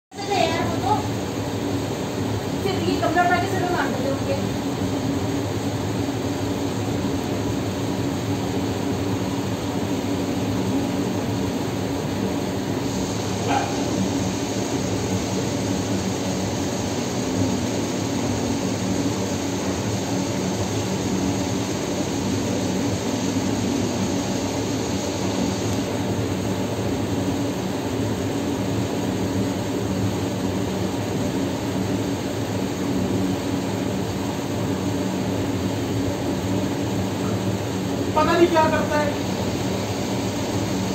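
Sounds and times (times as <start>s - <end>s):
whooshing machine hum: 0.1s - 40.9s
faint high whine: 32.6s - 40.9s.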